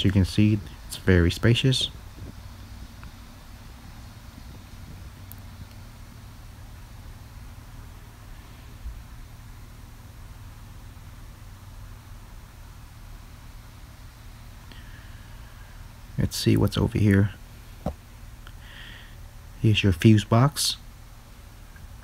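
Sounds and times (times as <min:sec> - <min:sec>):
low rumble with faint hum: 0:00.0 - 0:22.0.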